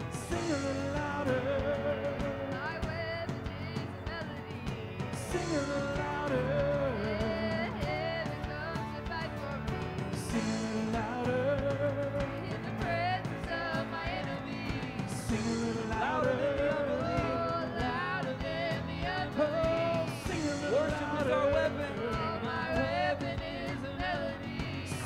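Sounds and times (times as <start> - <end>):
drums: 0.0 - 25.0
electric guitar: 0.0 - 25.0
keyboard: 0.0 - 25.0
voices singing together: 0.0 - 25.0.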